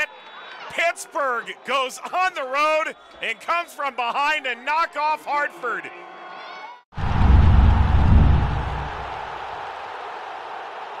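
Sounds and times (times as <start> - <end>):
deep boom: 7.0 - 9.4
noisy whoosh: 7.0 - 9.4.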